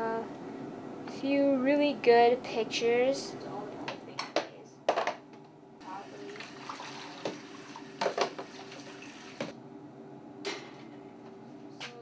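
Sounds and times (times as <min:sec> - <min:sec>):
water splashing in a sink: 0:05.9 - 0:09.5
plastic trays knocking on sink: 0:08.0 - 0:08.6.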